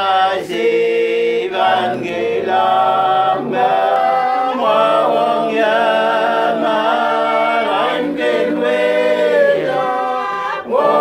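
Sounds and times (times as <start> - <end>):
group singing unaccompanied: 0.0 - 11.0.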